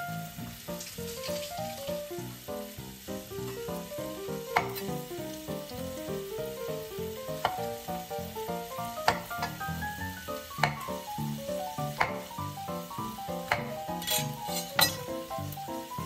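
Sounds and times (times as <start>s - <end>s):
light background music: 0.0s - 16.0s
meat sizzling in a pan: 0.0s - 16.0s
knife knocking on cutting board: 4.6s - 4.8s, 9.1s - 9.6s, 10.6s - 10.9s, 12.0s - 12.3s, 13.5s - 13.8s.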